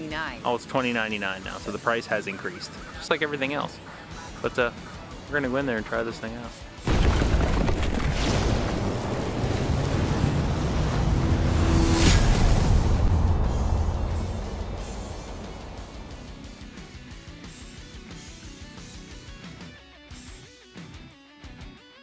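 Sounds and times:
cinematic logo music: 8.2s - 18.6s
heavy low rumble: 8.4s - 17.9s
sharp hit: 11.0s - 18.1s.

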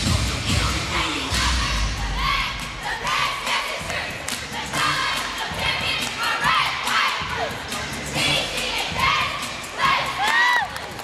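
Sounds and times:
crowd cheering and shouting: 8.4s - 11.0s
high whoops and screams: 10.0s - 10.9s.

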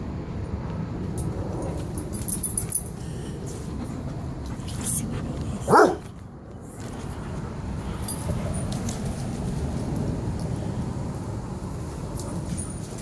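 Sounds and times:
dog barking: 5.7s - 6.1s.

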